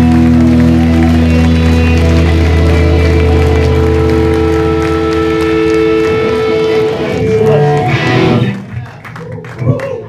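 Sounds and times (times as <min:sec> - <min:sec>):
amplified guitar and bass drone: 0:00.0 - 0:08.8.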